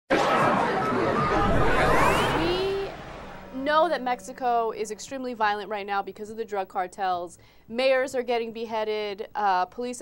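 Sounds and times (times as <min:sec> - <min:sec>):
rising sweep: 0:00.9 - 0:05.0.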